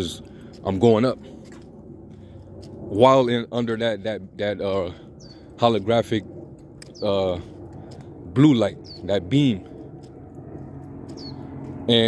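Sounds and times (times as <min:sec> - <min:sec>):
man talking: 0:00.0 - 0:01.2, 0:02.9 - 0:06.3, 0:07.0 - 0:07.5, 0:08.3 - 0:09.7
low steady hum: 0:00.0 - 0:12.0
faint bird chirps: 0:08.8 - 0:09.1.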